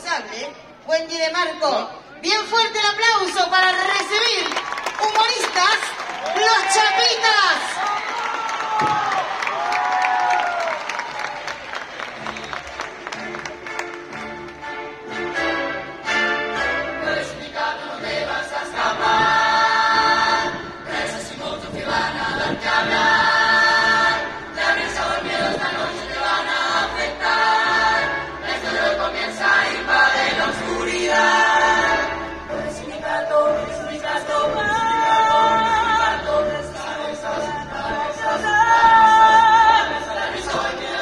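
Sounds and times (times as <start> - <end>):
audience applauding and cheering: 3.9 - 15.2
backing music: 11.0 - 41.0
mixed chorus singing: 15.3 - 41.0.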